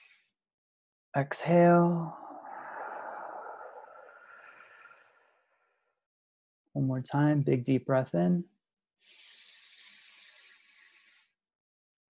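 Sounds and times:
person breathing in deeply: 2.0s - 5.9s, 9.0s - 11.4s.

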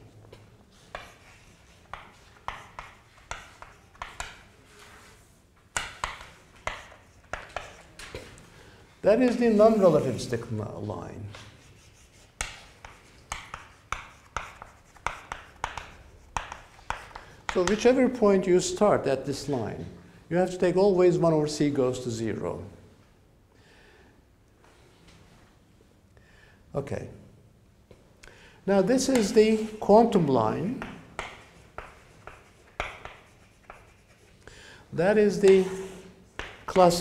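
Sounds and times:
chalk tapping and scraping on blackboard: 0.7s - 8.3s, 11.3s - 17.9s, 29.0s - 34.4s, 35.3s - 37.0s.

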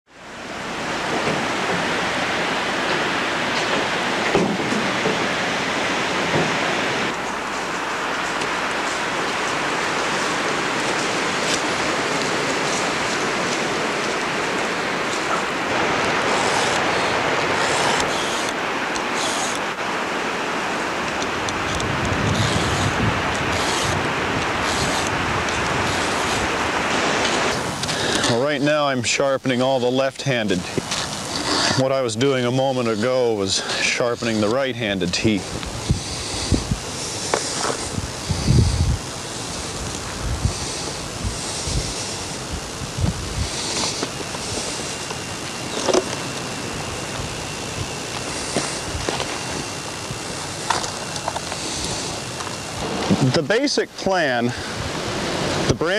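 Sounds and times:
loud steady hiss with crackles: 0.1s - 55.9s.

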